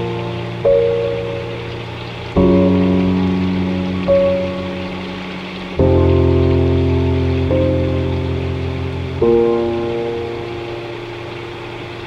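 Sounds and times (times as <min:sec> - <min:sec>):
piano chord: 0:00.0 - 0:12.0
steady rain-like hiss: 0:00.0 - 0:12.0.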